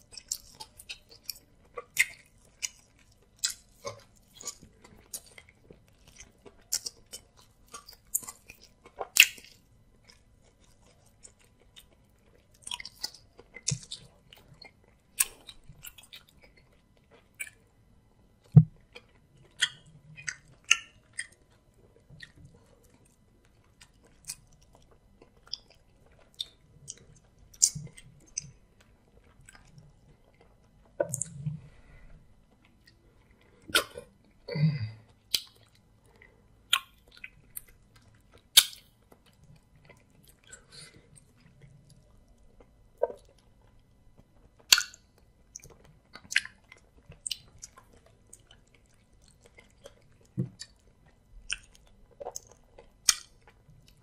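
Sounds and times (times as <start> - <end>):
wet chewing and lip smacks: 0.0 - 34.4, 35.0 - 54.0.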